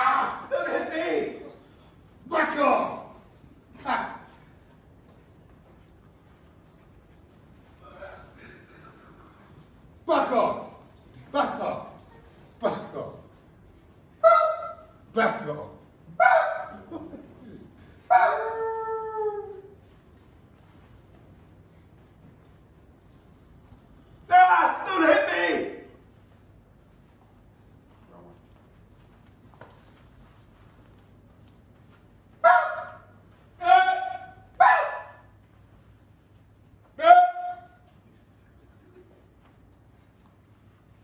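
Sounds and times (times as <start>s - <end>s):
man shouting: 0.0s - 1.6s, 2.2s - 4.4s, 10.0s - 12.0s, 12.6s - 13.3s, 14.2s - 19.7s, 24.2s - 26.0s, 33.6s - 35.2s, 37.0s - 37.9s.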